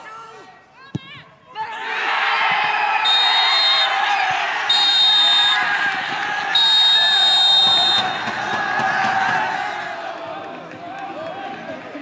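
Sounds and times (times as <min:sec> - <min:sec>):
players shouting and cheering: 0:00.0 - 0:12.0
shrill whistle blasts: 0:03.0 - 0:04.0, 0:04.7 - 0:05.7, 0:06.5 - 0:08.3.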